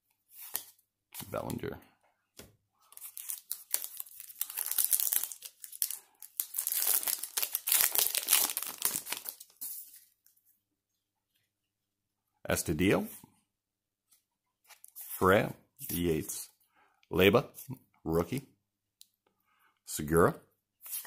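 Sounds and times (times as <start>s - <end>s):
wrapper crackling and ripping: 2.9s - 9.6s.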